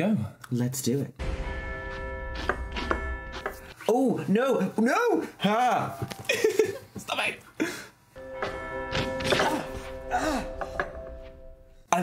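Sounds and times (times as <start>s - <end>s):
sustained music chord: 1.2s - 3.8s, 8.2s - 11.9s.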